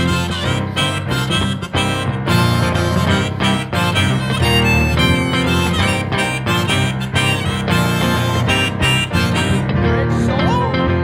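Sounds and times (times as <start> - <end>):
electric guitar: 0.0 - 11.0
harmonica: 0.0 - 11.0
keyboard piano: 0.0 - 11.0.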